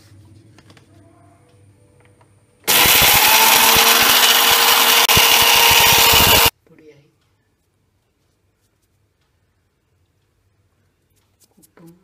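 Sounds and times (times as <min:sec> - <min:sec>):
mixer grinder motor whirr: 0:02.7 - 0:06.5.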